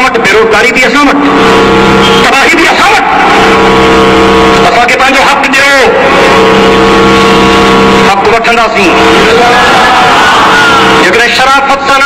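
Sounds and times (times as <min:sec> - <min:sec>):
man's voice over loudspeaker: 0:00.0 - 0:01.4, 0:02.2 - 0:03.4, 0:04.6 - 0:06.3, 0:08.0 - 0:10.0, 0:11.0 - 0:12.0.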